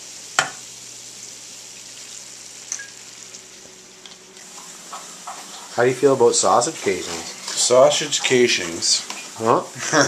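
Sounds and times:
meat sizzling in a frying pan: 0.0 - 10.0.

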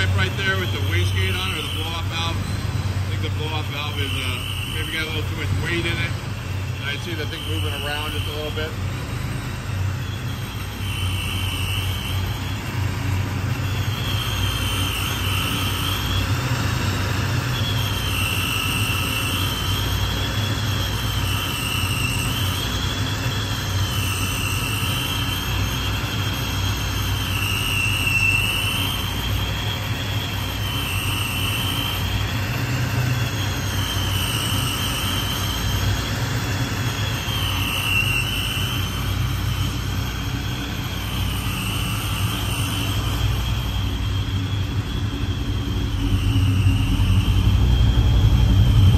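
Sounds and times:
car engine idling: 0.0 - 48.9
supercharger whine: 0.0 - 48.9.

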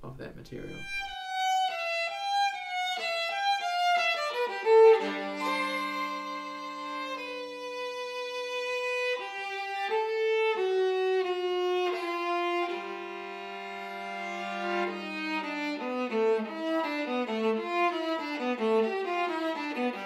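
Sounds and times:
solo viola playing: 0.6 - 20.0.

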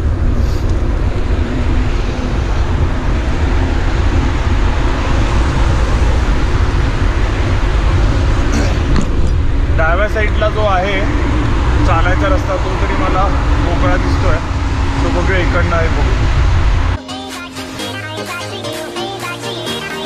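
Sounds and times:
road traffic passing: 0.0 - 17.0
wind rumble on microphone: 0.0 - 17.0.

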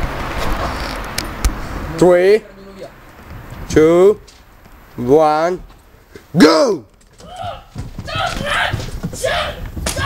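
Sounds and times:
children yelling excitedly: 7.2 - 10.0.

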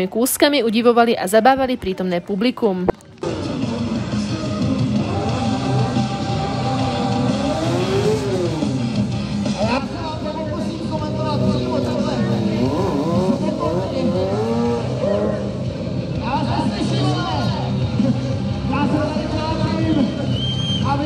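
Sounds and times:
motorcycle engine revving: 3.2 - 16.3.

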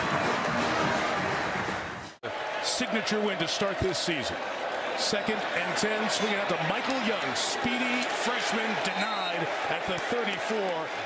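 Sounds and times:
music: 0.0 - 2.2
stadium crowd noise: 0.0 - 11.0.

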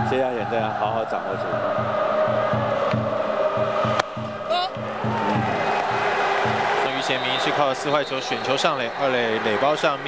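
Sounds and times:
crowd chanting: 0.0 - 7.6
drums beating: 1.4 - 6.8.

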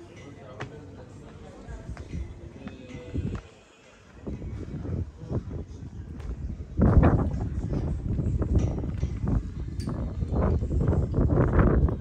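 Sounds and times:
wind rumble on microphone: 4.2 - 12.0.

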